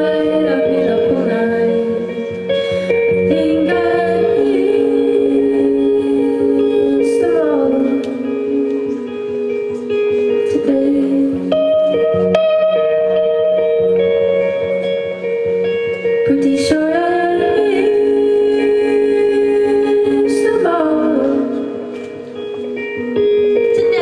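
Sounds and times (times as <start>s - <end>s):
electric guitar: 0.0s - 24.0s
women singing held notes: 3.1s - 9.1s, 16.2s - 22.2s.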